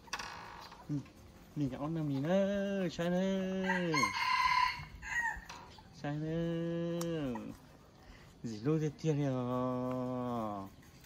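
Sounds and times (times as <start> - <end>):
rooster crowing: 3.6 - 5.6.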